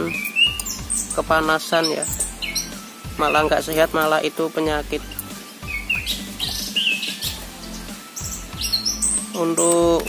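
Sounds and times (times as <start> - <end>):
songbird chirps: 0.0 - 10.0.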